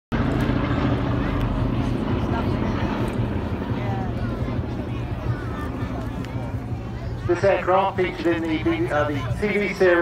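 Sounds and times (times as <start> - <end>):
propeller plane drone overhead: 0.1 - 10.0.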